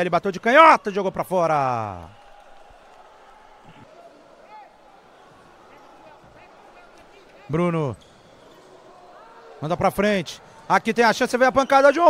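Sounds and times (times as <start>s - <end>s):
distant voices of players and crowd: 2.0s - 12.0s
shoe squeaks on court: 8.0s - 8.7s.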